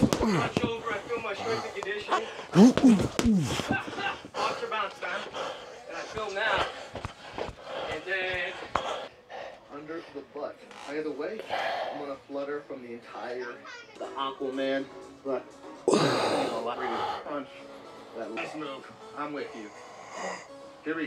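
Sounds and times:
gloves punching heavy bag: 0.0s - 4.4s
person speaking: 0.0s - 4.6s.

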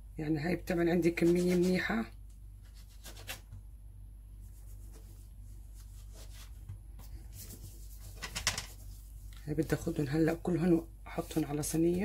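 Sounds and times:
low steady hum: 0.0s - 12.0s
scratchy strokes: 2.6s - 3.4s, 4.4s - 6.6s, 7.2s - 10.0s.

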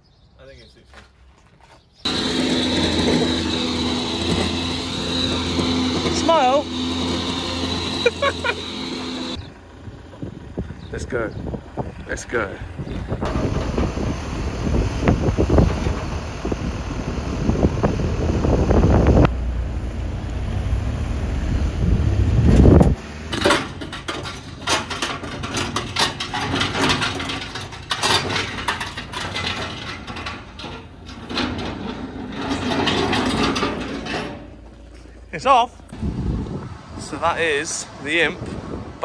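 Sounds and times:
truck driving: 2.1s - 39.0s
wind rumble on microphone: 9.4s - 23.0s, 35.9s - 39.0s
scattered knocks and clicks: 23.3s - 34.8s.

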